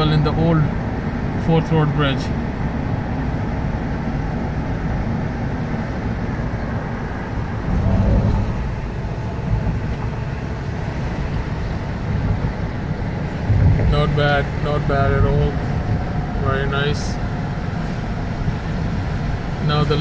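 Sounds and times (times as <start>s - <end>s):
car engine: 0.0s - 20.0s
tyres rolling on wet road: 0.0s - 20.0s.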